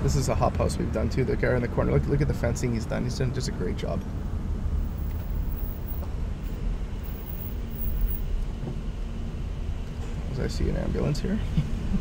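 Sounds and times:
car engine and road noise: 0.0 - 12.0
faint steady hum: 0.0 - 12.0.

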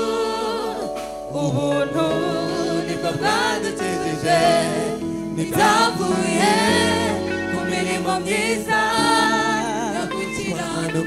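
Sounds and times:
backing singers: 0.0 - 11.0
man singing lead: 1.3 - 7.0, 7.6 - 11.0.

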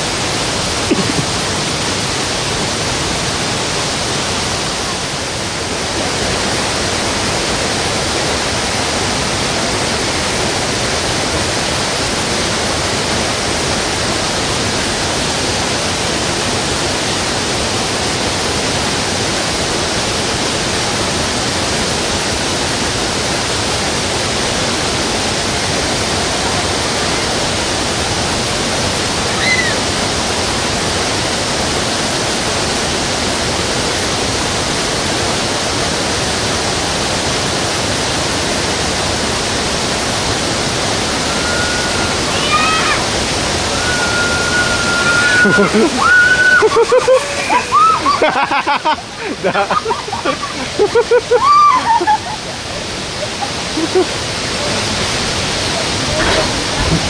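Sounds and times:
steady loud hiss: 0.0 - 57.0.

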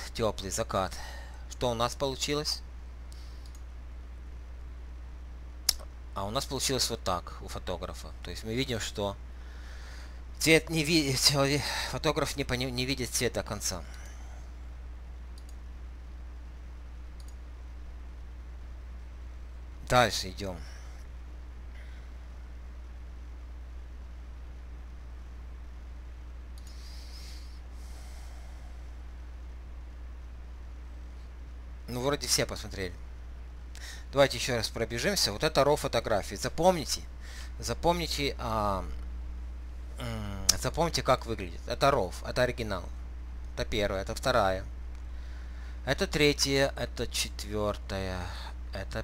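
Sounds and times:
steady low hum: 0.0 - 49.0
computer mouse clicks: 3.1 - 3.7, 15.3 - 15.6, 17.2 - 17.4, 26.5 - 26.8
soft breaths through nose: 26.6 - 29.1.

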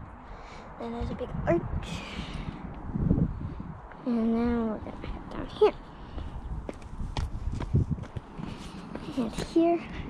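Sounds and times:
footsteps: 6.1 - 10.0.

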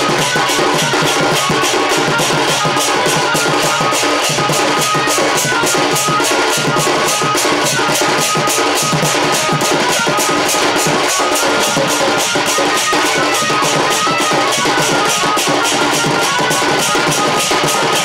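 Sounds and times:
hand-played barrel drum beat: 0.0 - 18.0.

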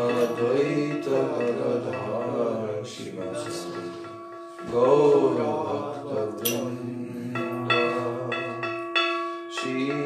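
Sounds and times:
man singing a chant: 0.0 - 10.0.

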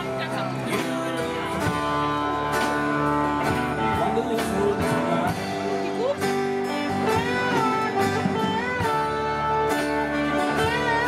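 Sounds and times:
guitar notes ringing: 0.0 - 11.0
live band playing: 0.0 - 11.0
drum strokes: 0.8 - 11.0.

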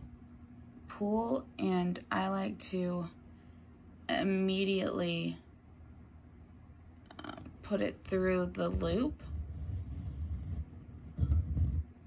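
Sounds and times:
rumbling handling noise on microphone: 8.6 - 12.0.

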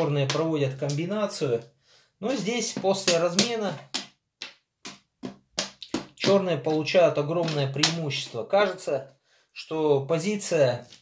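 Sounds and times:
wooden pieces knocking on board: 2.7 - 6.4.

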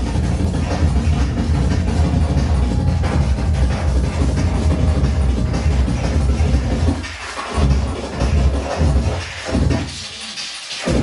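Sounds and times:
loud breakcore music: 0.0 - 11.0.

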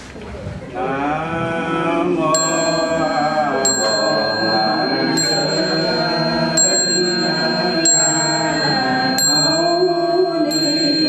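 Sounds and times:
sustained chanting: 0.7 - 11.0
small high-pitched bell strikes: 2.4 - 11.0.

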